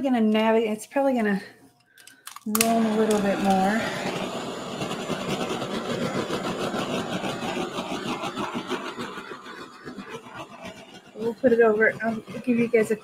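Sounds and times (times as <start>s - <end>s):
torch flame hissing: 2.6s - 13.0s.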